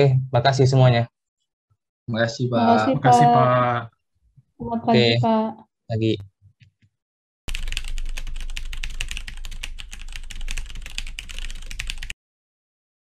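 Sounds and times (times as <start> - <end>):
keyboard typing clicks: 7.5 - 12.1.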